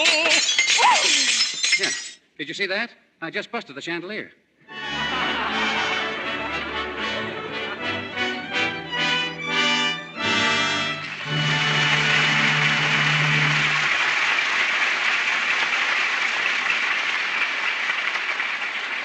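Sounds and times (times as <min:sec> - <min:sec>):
orchestra music cue: 0:04.7 - 0:14.4
audience applauding: 0:10.2 - 0:19.0.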